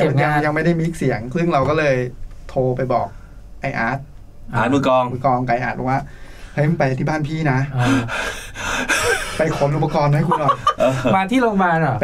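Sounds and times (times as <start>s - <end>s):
man gasping: 7.8s - 9.4s
man speaking: 9.3s - 12.0s.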